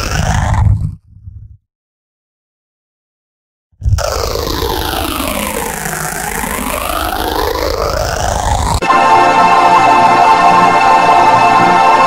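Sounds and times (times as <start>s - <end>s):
heavy low hum: 0.0s - 1.6s
distorted noisy roar: 3.8s - 12.0s.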